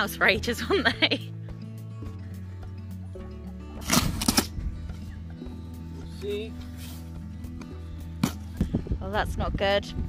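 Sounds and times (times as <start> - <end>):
background music: 0.0 - 10.0
packing tape ripping: 3.8 - 4.5.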